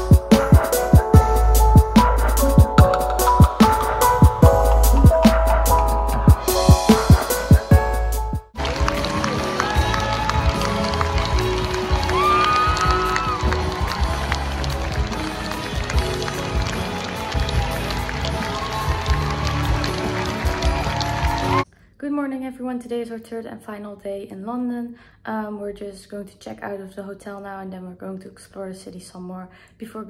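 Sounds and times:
theatre orchestra playing: 0:00.0 - 0:21.6
audience clapping: 0:08.5 - 0:21.6.

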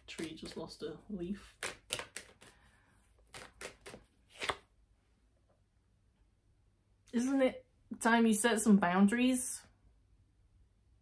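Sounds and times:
cards snapping while shuffled: 0:01.5 - 0:02.6, 0:03.2 - 0:04.7.

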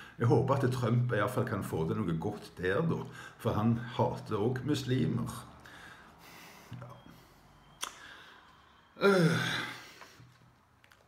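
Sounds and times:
man sighing: 0:09.0 - 0:10.1.

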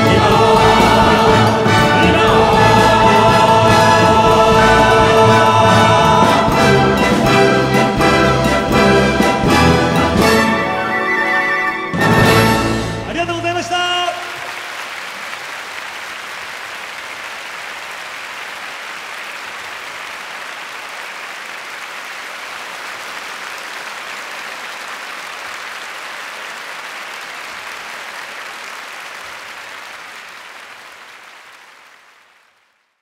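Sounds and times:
audience applauding: 0:13.3 - 0:33.0.

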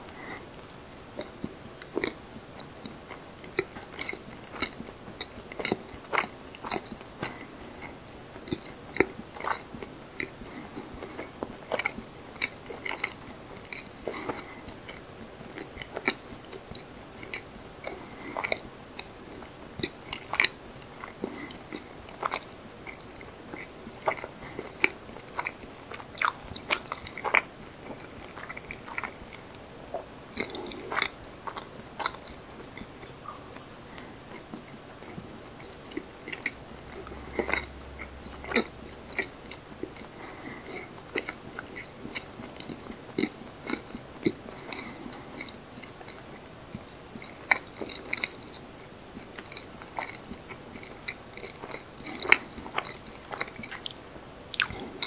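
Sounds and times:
person chewing: 0:00.0 - 0:48.6, 0:49.2 - 0:55.0.

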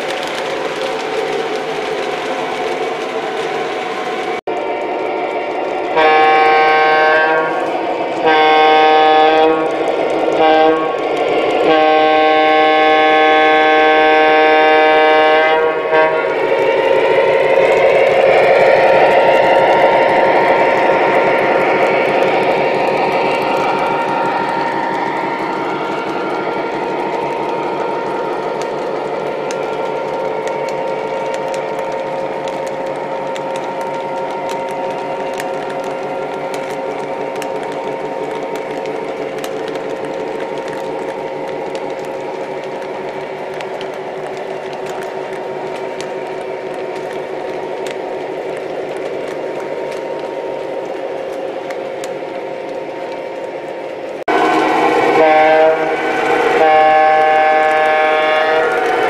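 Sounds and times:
rolling wheels: 0:00.0 - 0:14.0, 0:15.3 - 0:59.0
model train horn: 0:05.9 - 0:07.6, 0:08.2 - 0:11.0, 0:11.6 - 0:16.4, 0:54.3 - 0:59.0.

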